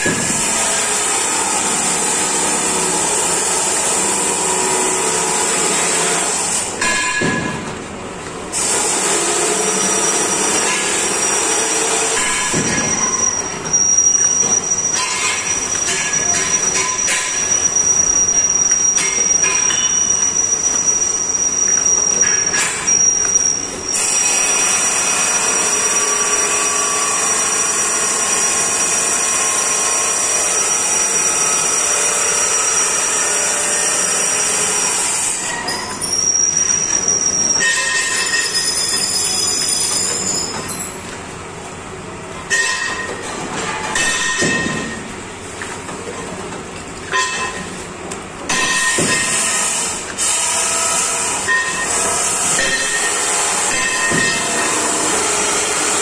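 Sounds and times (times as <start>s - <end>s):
high-pitched machine whine: 8.7s - 41.0s, 48.5s - 56.0s.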